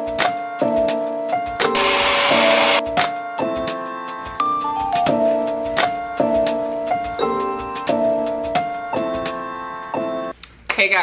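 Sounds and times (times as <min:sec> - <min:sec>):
background music: 0:00.0 - 0:10.4
handheld vacuum whining: 0:01.8 - 0:02.8.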